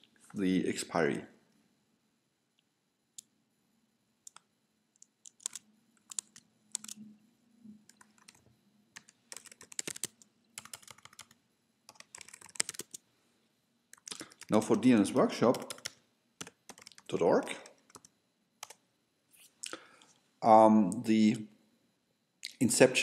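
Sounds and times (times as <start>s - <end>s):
typing on computer keyboard: 4.2s - 7.0s, 7.9s - 8.4s, 9.0s - 13.0s, 13.9s - 14.6s, 15.5s - 18.8s.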